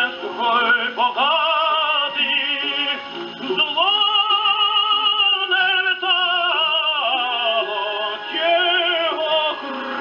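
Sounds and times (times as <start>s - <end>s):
tenor singing opera with orchestra: 0.0s - 10.0s.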